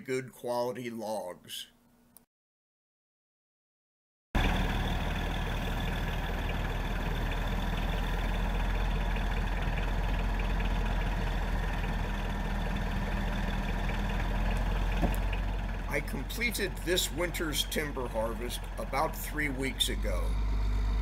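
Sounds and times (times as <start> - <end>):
diesel truck engine running: 4.4 - 21.0.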